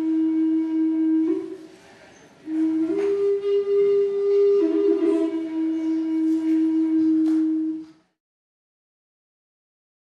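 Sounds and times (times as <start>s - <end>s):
wooden flute long low note: 0.0s - 8.2s.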